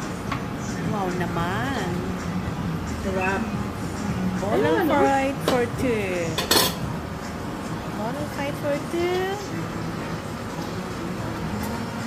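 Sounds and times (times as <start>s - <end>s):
cutlery clinking on plate: 6.4s - 6.9s.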